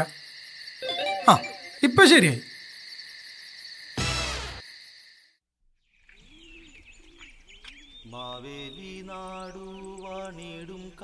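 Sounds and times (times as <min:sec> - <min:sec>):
crickets chirping: 0:00.0 - 0:05.4.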